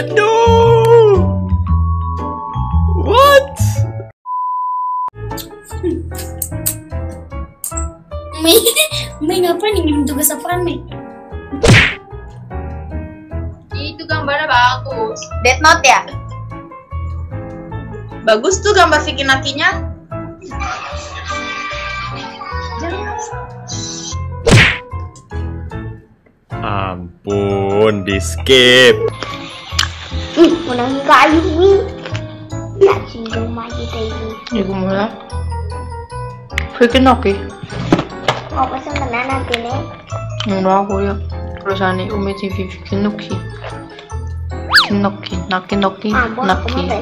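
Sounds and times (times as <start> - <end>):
background music: 0.0 - 4.1, 5.2 - 47.0.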